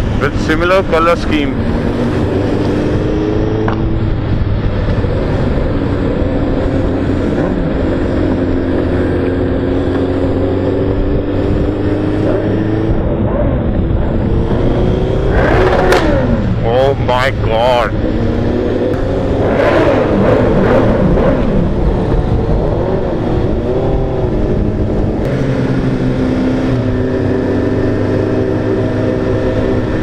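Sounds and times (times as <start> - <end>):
motorcycle engine accelerating: 0.0 - 30.0
wind and road noise: 0.0 - 30.0.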